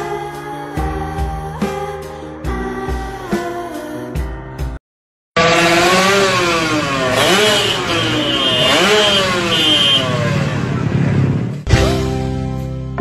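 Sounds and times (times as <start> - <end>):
engine revving: 5.4 - 11.7
loud rushing noise: 5.4 - 11.7.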